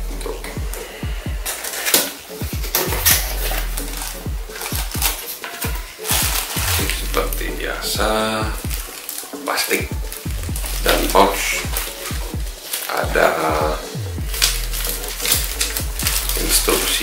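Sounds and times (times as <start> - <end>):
electronic music with steady beat: 0.0 - 17.0
plastic wrapping rustling: 0.0 - 17.0.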